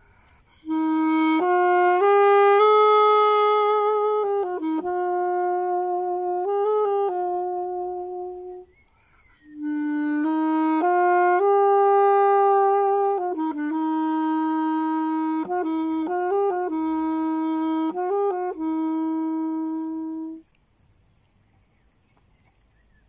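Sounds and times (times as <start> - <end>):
solo saxophone melody: 0.0 - 20.6.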